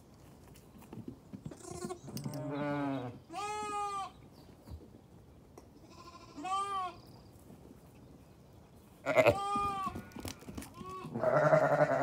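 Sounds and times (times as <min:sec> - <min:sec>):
sheep bleating: 0:09.0 - 0:10.2, 0:10.8 - 0:12.0.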